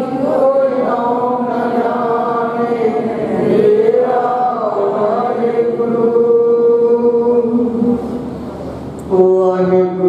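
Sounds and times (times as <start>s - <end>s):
congregation chanting in unison: 0.0s - 8.2s.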